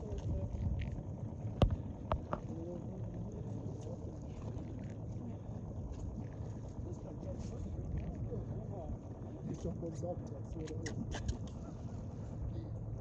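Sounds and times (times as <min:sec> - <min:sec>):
wind rumble on microphone: 0:00.0 - 0:13.0.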